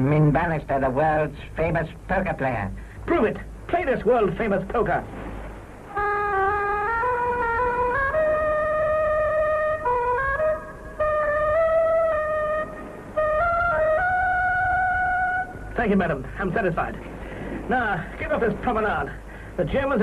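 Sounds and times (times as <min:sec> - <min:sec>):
slow single-line melody: 0:05.6 - 0:15.8.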